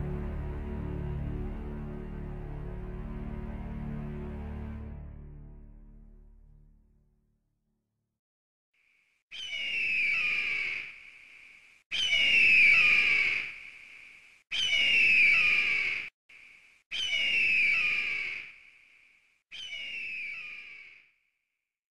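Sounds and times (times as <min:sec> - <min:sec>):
eagle screaming cry: 0:09.4 - 0:10.9.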